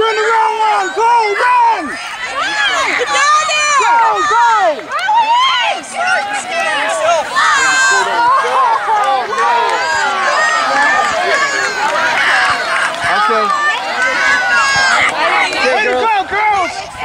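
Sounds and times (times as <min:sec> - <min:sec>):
children and spectators shouting: 0:00.0 - 0:17.0.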